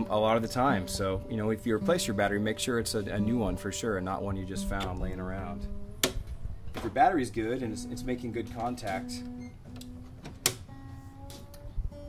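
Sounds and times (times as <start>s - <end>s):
guitar strings ringing: 0.0s - 12.0s
guitar handling click: 4.6s - 7.0s, 8.0s - 11.7s.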